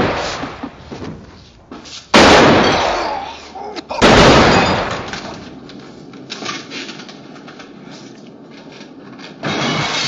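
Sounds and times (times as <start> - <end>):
pistol shots: 2.1 - 3.2, 4.0 - 5.5.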